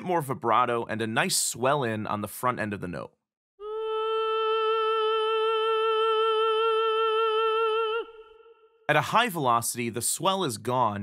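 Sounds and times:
operatic soprano singing ah: 3.6s - 9.0s.

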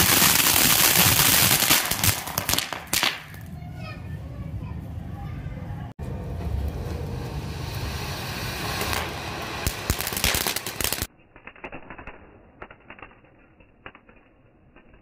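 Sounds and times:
firework fountain hissing: 0.0s - 3.2s, 6.4s - 11.1s
firework cracks: 0.0s - 3.5s, 6.6s - 15.0s
muffled crackle with pops: 11.1s - 15.0s.

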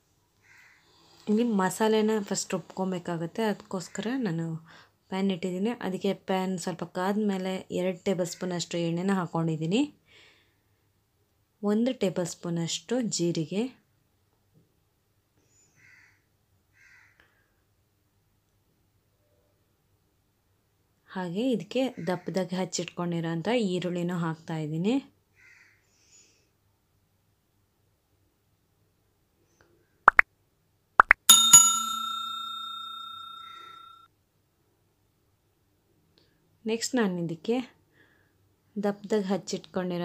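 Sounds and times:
bell ringing: 31.2s - 34.0s.

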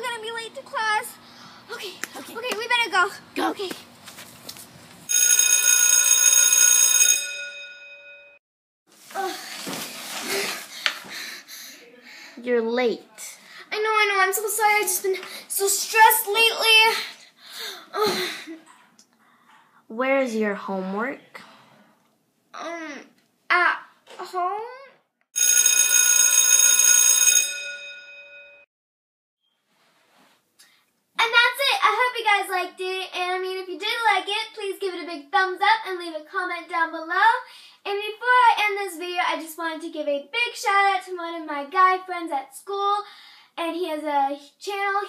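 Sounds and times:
electric school bell ringing: 5.1s - 8.4s, 25.4s - 28.7s.

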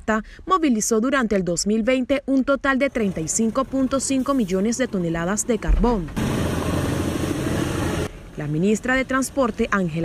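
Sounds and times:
diesel locomotive engine: 2.9s - 10.0s.

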